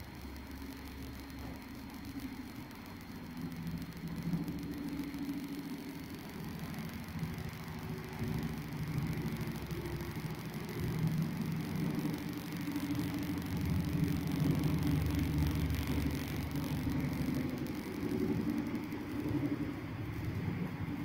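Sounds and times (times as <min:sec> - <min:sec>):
low rumbling hum: 0:00.0 - 0:21.0.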